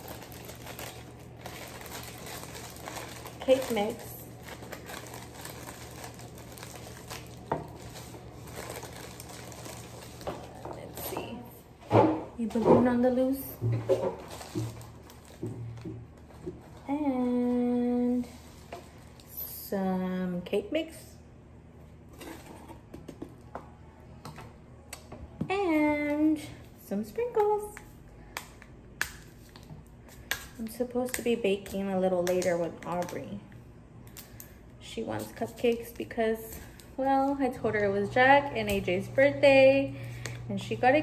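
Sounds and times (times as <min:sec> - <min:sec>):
dry mix rustling in tube: 0:00.0 - 0:11.0, 0:14.2 - 0:19.2
plastic bag crinkling: 0:00.0 - 0:11.5, 0:14.0 - 0:19.5.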